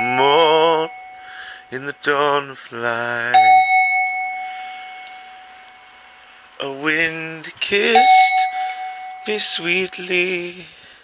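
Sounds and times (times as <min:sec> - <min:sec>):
copper bell ringing: 0:00.0 - 0:02.4, 0:03.3 - 0:05.7, 0:07.8 - 0:10.6.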